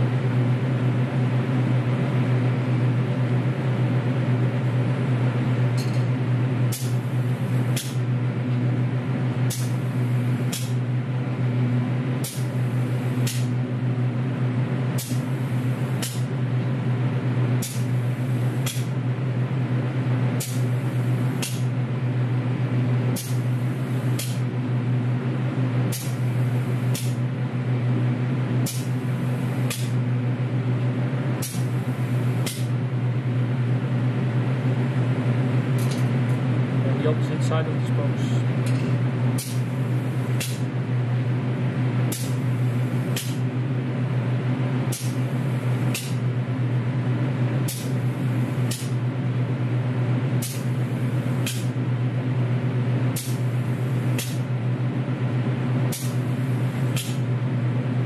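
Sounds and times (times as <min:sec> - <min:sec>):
extraction fan hum: 0:00.0 - 0:58.0
spray gun hissing: 0:12.2 - 0:13.5, 0:17.6 - 0:18.9, 0:20.4 - 0:21.7, 0:23.2 - 0:24.4, 0:28.7 - 0:30.0, 0:50.4 - 0:51.8, 0:53.2 - 0:54.4, 0:55.9 - 0:57.2.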